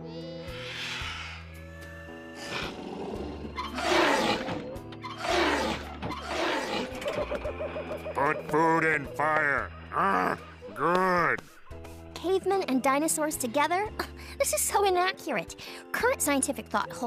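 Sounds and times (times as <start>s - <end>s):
cartoon background music: 0.0s - 17.0s
dinosaur roar: 0.2s - 7.2s.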